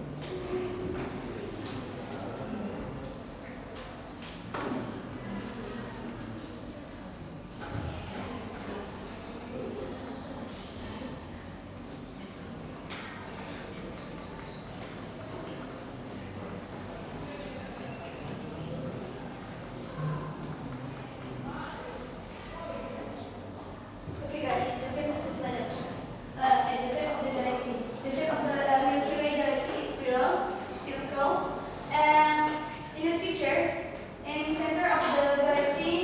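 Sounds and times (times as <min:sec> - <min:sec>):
quiet indistinct speech: 0:00.0 - 0:29.6
classroom background noise: 0:00.0 - 0:36.0.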